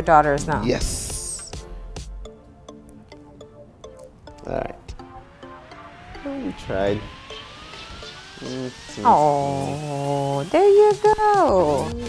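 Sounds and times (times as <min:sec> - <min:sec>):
faint rising tone: 0:01.0 - 0:12.0.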